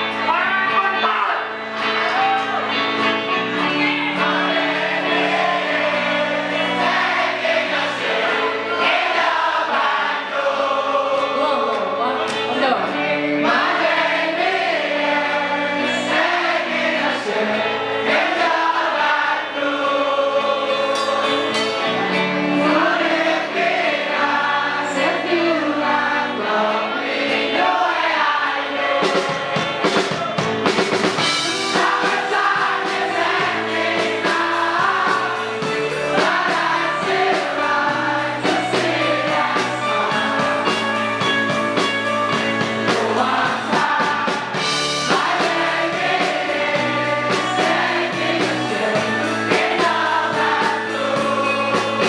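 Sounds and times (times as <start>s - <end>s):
crowd singing along: 0.0s - 52.0s
live band playing: 0.0s - 52.0s.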